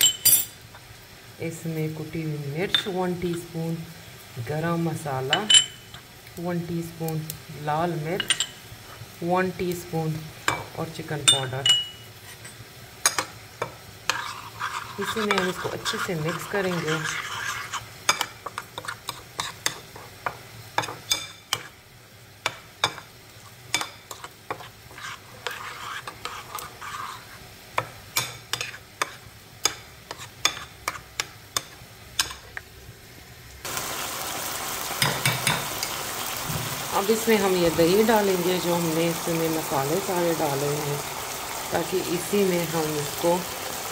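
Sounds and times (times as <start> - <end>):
chicken sizzling in oil: 0.0 - 43.9.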